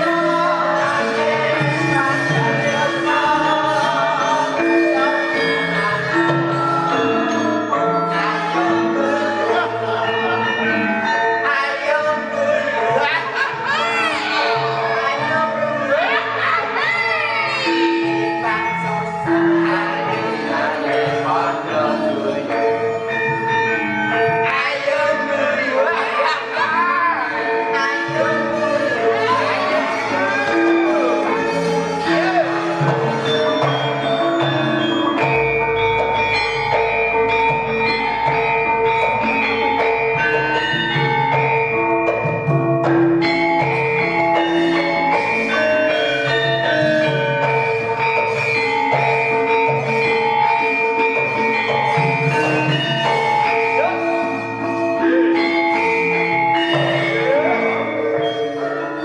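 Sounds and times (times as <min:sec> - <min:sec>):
gamelan playing: 0:00.0 - 0:59.0.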